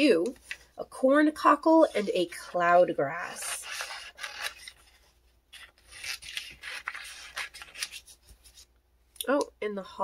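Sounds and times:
paper rustling: 3.3 - 8.7.

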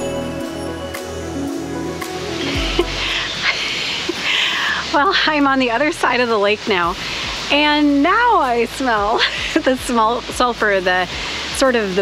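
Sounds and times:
soft background music: 0.0 - 12.0
steaming hot spring hiss: 0.5 - 12.0.

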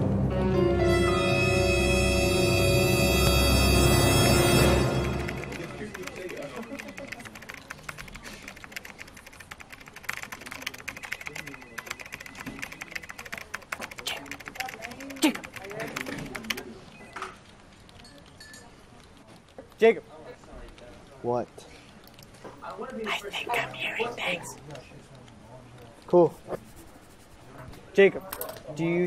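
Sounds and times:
music: 0.0 - 6.0
fast typing on keyboard: 4.9 - 22.3, 26.0 - 27.6.

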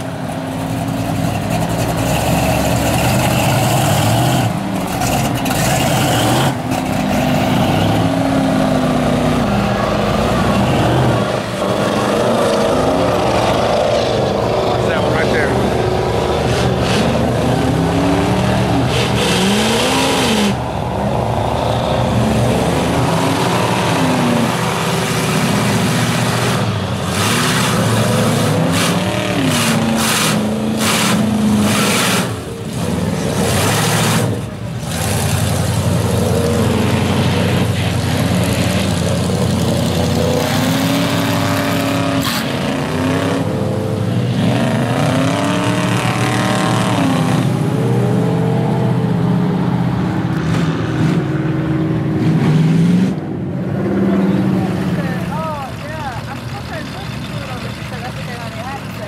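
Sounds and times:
truck engines revving: 0.0 - 59.0.

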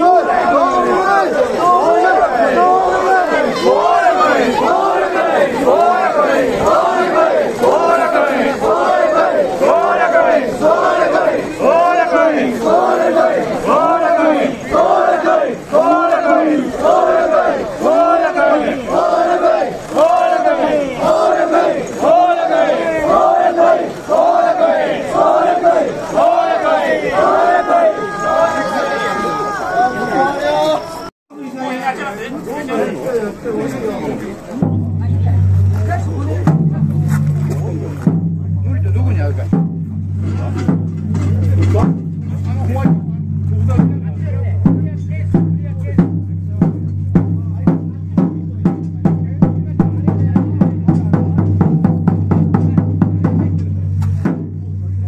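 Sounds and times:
group chanting in rhythm: 0.0 - 28.8.

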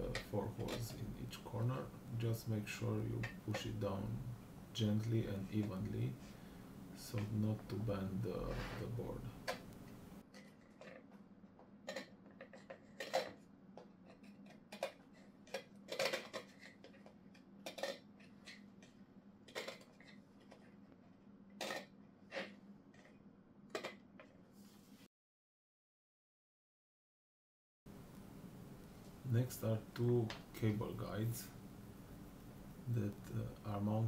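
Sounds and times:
small hard parts clicking: 14.0 - 20.6.

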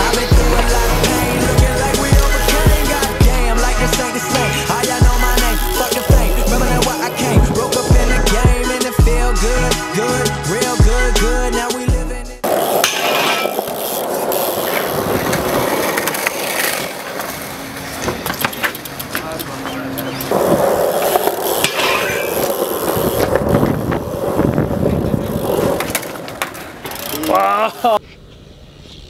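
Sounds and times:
background music: 0.0 - 12.4
background voices: 0.0 - 12.6
skateboard wheels rolling on concrete: 0.0 - 29.0.

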